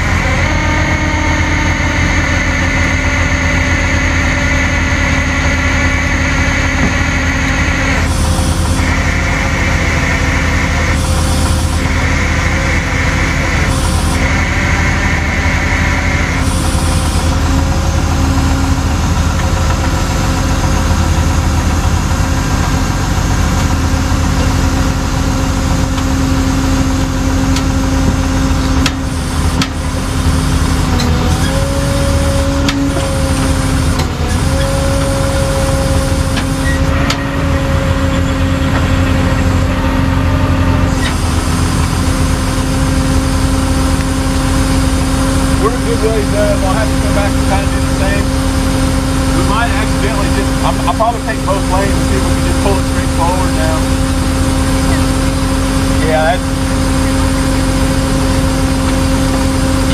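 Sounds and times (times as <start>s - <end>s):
tow truck engine running: 0.0s - 59.9s.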